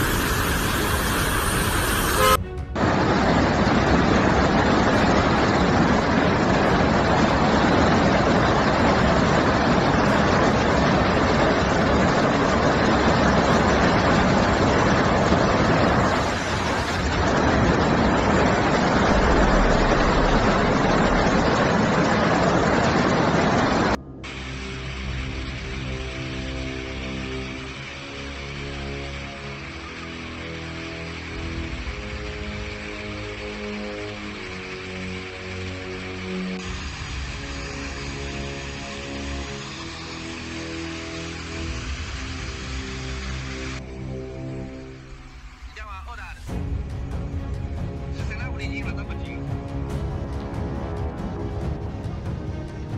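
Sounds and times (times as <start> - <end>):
floodwater torrent rushing: 0.0 - 52.9
background music with held notes: 2.2 - 3.4, 46.5 - 52.9.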